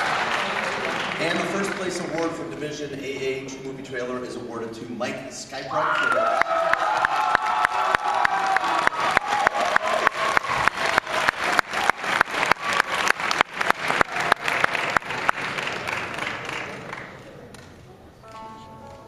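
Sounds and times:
audience applauding: 0.0 - 2.4, 6.0 - 17.4
close hand clapping: 6.4 - 17.7.

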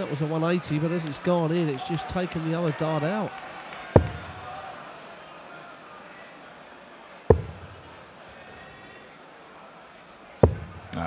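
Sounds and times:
murmur of hall: 0.0 - 11.0.

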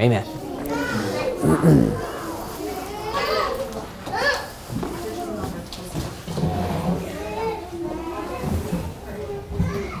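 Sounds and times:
children talking and playing: 0.0 - 10.0
indistinct chatter of voices: 0.0 - 10.0.

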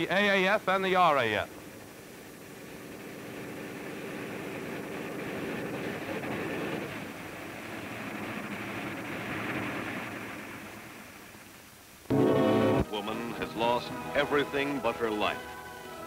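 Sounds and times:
piston aircraft engine droning: 0.0 - 16.0.

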